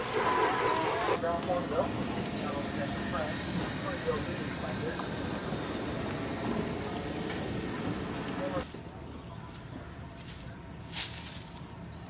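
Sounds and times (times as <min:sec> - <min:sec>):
steady outdoor hiss: 0:00.0 - 0:12.0.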